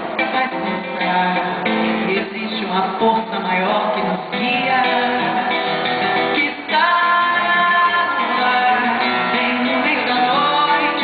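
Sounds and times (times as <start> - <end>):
acoustic guitar: 0.0 - 11.0
woman singing samba: 0.0 - 11.0.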